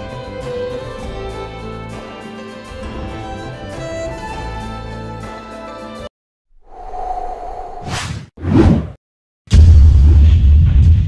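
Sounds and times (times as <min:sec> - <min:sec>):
whoosh: 0:06.6 - 0:09.0
deep rumbling boom: 0:09.5 - 0:11.0.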